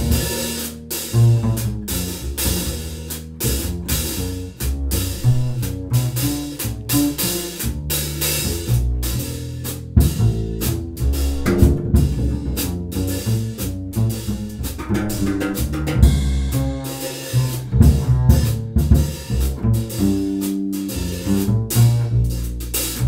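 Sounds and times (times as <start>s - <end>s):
bass line: 0.0s - 23.0s
drum kit and cymbals: 0.0s - 23.0s.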